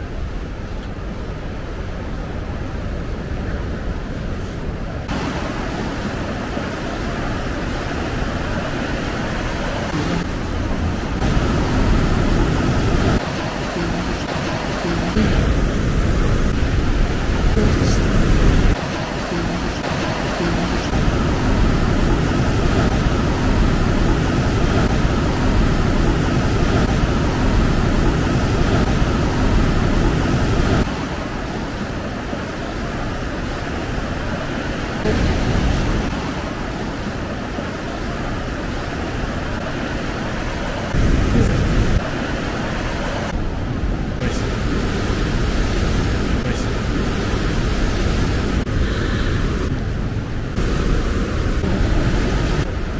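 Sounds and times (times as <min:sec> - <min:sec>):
ocean surf breaking on rocks: 0:00.0 - 0:52.9.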